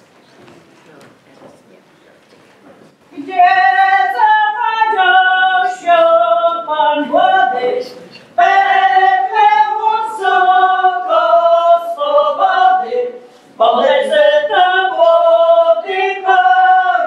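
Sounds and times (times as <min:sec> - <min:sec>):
women singing unaccompanied: 0:03.1 - 0:17.0.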